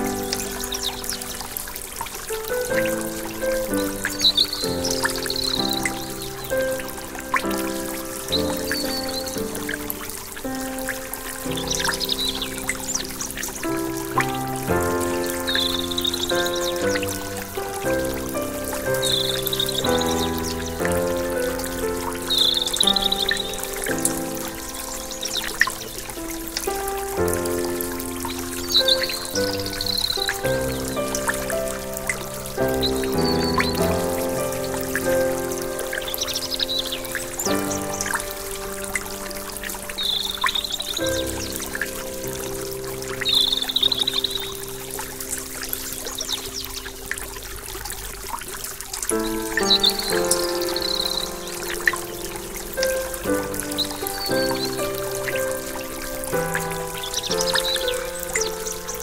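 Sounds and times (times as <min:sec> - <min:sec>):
slow calm instrumental music: 0:00.0 - 0:59.0
stream running over rocks: 0:00.0 - 0:59.0.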